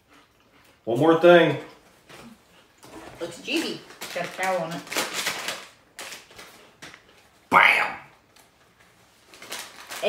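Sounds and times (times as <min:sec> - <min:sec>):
plastic snack bag crinkling: 0:02.8 - 0:07.4, 0:08.3 - 0:10.0.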